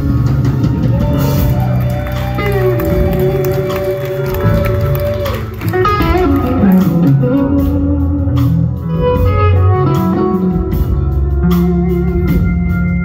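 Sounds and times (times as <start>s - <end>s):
blues-rock band playing: 0.0s - 13.0s
drum kit steady beat: 0.0s - 13.0s
electric guitar bending notes: 1.2s - 13.0s.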